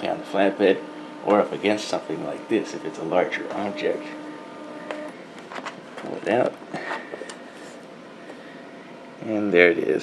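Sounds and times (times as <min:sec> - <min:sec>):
scanner motor whine: 0:00.0 - 0:08.2.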